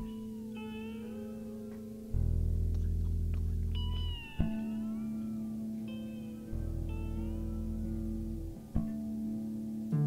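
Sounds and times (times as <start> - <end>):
held bass notes: 0.0 - 10.0
high pitch-bending tones: 0.0 - 10.0.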